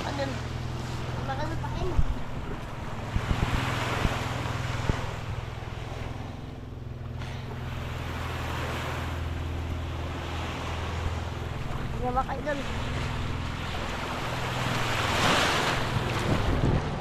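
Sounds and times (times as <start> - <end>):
wind on microphone: 0.0 - 5.8, 10.8 - 17.0
small waves on sandy beach: 0.0 - 17.0
steady low hum: 0.0 - 17.0.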